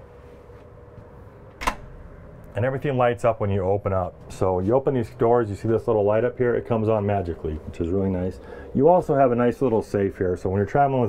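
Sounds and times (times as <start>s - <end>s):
faint steady hum: 0.0s - 11.0s
cabinet door click: 1.6s - 2.0s.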